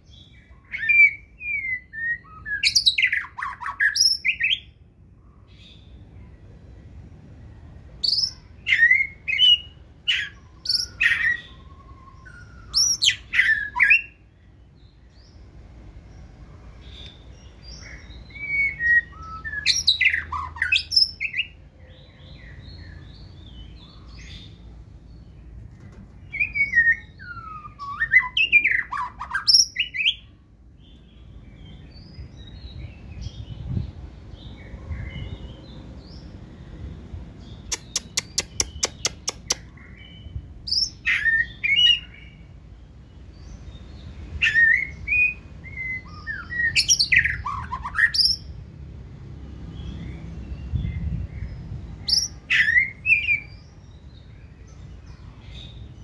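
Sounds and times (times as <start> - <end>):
bird singing whistled phrases: 0.4 - 4.7, 8.0 - 14.2, 18.3 - 21.6, 26.3 - 30.3, 40.7 - 42.4, 44.4 - 48.4, 52.0 - 53.6.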